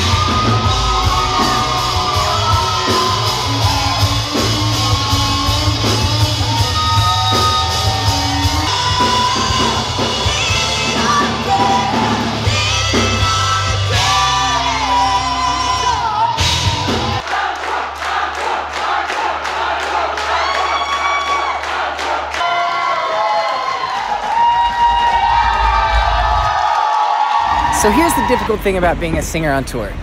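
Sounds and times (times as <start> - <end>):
live rock band playing: 0.0 - 17.2
crowd cheering: 0.0 - 29.0.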